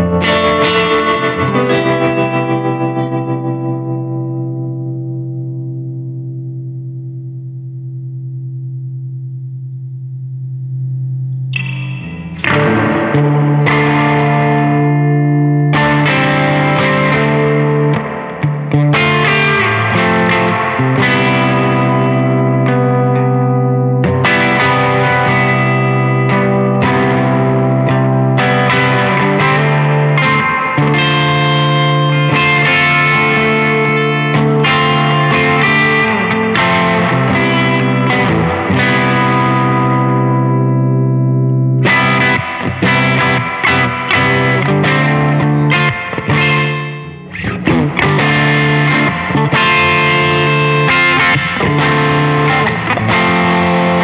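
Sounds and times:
electric guitar chords: 0.0 - 54.0.

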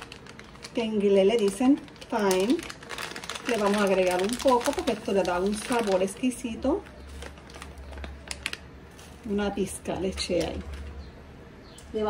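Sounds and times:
plastic bag rustling: 0.0 - 11.1.

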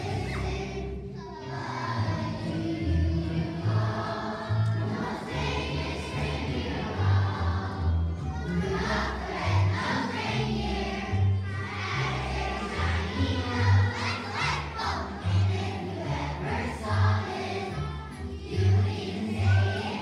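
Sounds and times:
children's choir singing: 0.0 - 20.0
instrumental accompaniment with bass line: 1.8 - 20.0.

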